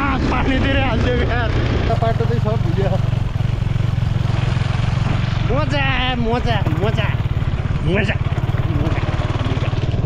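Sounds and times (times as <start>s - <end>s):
motorcycle engine running: 0.0s - 10.0s
wind and road noise: 0.0s - 10.0s.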